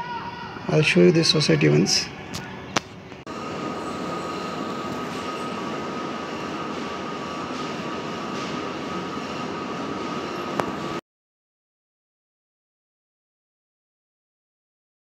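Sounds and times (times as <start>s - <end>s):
machine noise with high whine: 0.0s - 11.0s.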